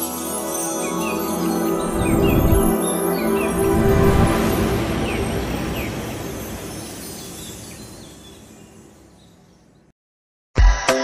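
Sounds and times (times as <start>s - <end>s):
rumbling whoosh: 1.8s - 7.6s.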